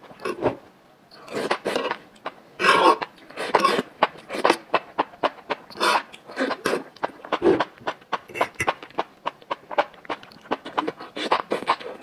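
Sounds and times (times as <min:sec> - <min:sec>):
wet chewing and smacking: 0:03.0 - 0:12.0.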